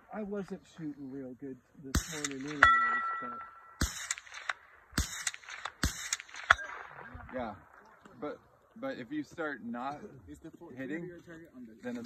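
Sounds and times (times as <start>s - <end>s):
rifle shots: 1.9s - 7.9s.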